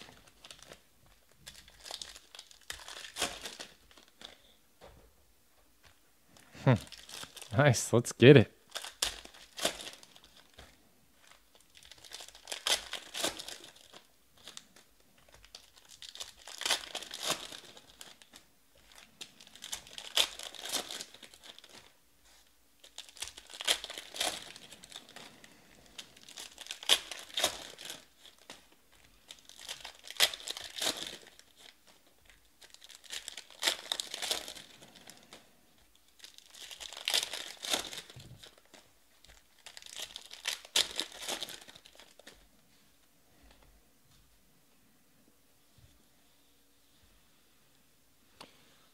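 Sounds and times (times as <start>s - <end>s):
foil wrappers tearing and crinkling: 0.0s - 0.8s, 1.4s - 4.4s, 6.8s - 7.5s, 8.7s - 42.4s.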